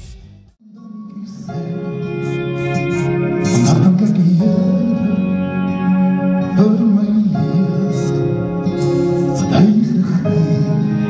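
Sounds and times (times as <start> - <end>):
acoustic guitar: 0.0 - 11.0
keyboard: 0.0 - 11.0
man singing: 0.2 - 11.0.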